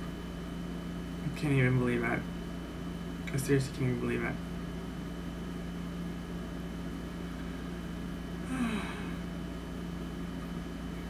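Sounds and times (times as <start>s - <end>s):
appliance hum: 0.0s - 11.0s
faint high whine: 0.0s - 11.0s.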